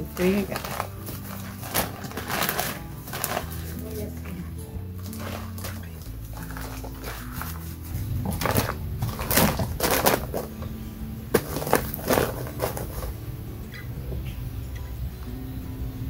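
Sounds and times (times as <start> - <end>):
plastic bags rustling: 0.0 - 13.2
soft background music: 0.0 - 16.0.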